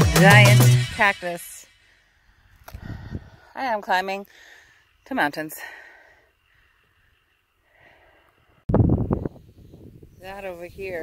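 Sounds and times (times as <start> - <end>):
wind blowing across microphone: 2.7 - 3.4, 8.7 - 11.0.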